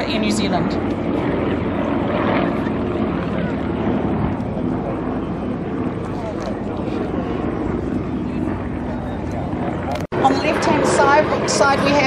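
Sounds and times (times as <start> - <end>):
radial aircraft engine and propeller: 0.0 - 12.0.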